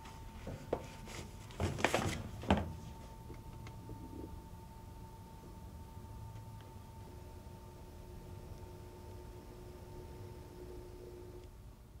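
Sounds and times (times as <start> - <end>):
two-tone hum: 2.8 - 12.0.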